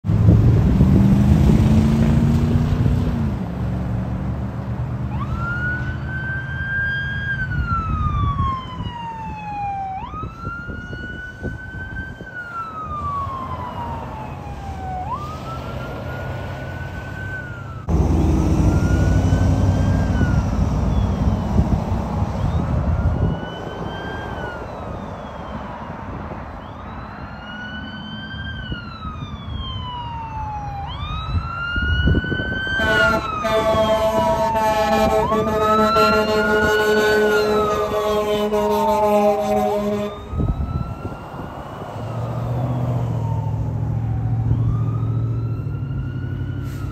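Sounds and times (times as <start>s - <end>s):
passing road traffic: 0.0s - 46.9s
siren wailing: 5.1s - 46.9s
steady horn blast: 32.8s - 40.3s.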